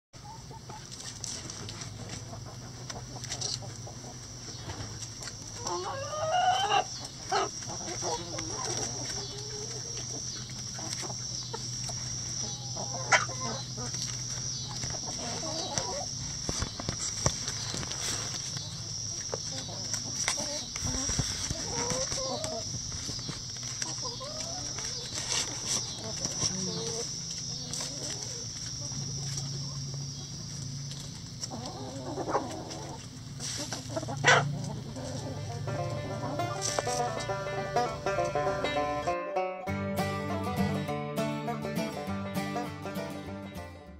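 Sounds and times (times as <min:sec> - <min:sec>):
hens clucking: 0:00.2 - 0:39.5
banjo music: 0:33.6 - 0:43.9.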